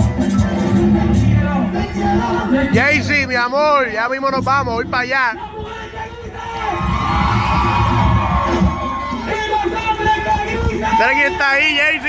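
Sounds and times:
band playing merengue: 0.0s - 5.4s, 6.4s - 12.0s
crowd cheering: 6.4s - 12.0s.

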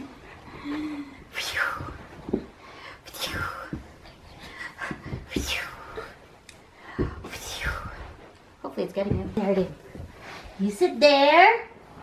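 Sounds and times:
woman's voice: 8.6s - 9.9s, 10.6s - 11.8s
soft low thump: 9.0s - 10.3s.

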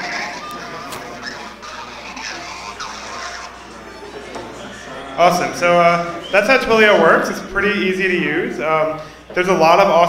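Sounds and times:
murmur of voices: 0.0s - 10.0s
mobile phones ringing: 2.6s - 7.1s.

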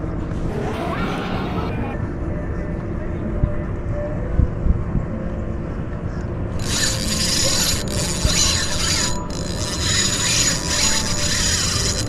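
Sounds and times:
wind rumble on microphone: 1.8s - 9.3s.

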